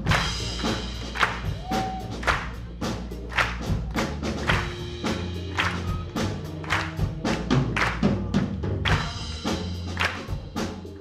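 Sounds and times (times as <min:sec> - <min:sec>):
drum kit hits: 0:00.0 - 0:11.0
jazz band playing: 0:00.0 - 0:11.0
low bass notes: 0:00.0 - 0:11.0.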